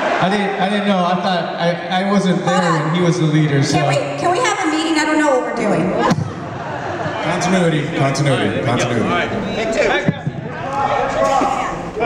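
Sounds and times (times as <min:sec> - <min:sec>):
voices talking in large hall: 0:00.0 - 0:12.0.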